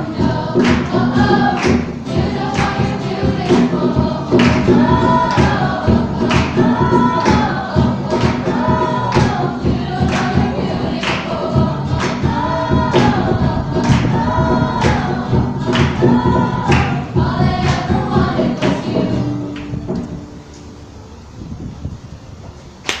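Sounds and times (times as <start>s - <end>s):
sharp beat: 0.0s - 19.2s
girls choir singing: 0.0s - 20.3s.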